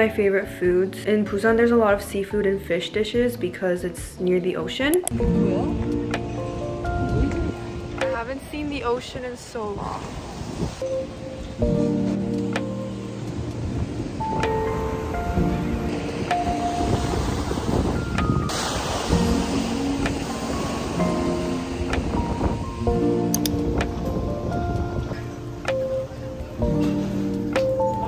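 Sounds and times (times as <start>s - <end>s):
soft melodic music: 0.0s - 9.8s, 10.8s - 28.0s
wind: 3.7s - 28.0s
surf: 5.2s - 28.0s.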